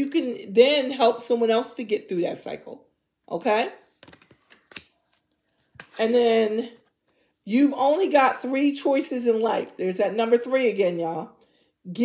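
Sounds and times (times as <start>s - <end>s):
cards clicking and tapping: 4.0s - 6.0s.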